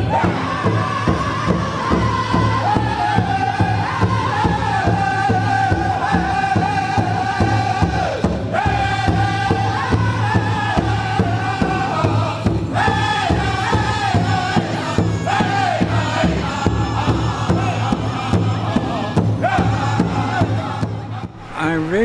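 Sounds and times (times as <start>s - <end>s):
voices chanting in unison: 0.0s - 22.0s
steady drumbeat: 21.2s - 22.0s.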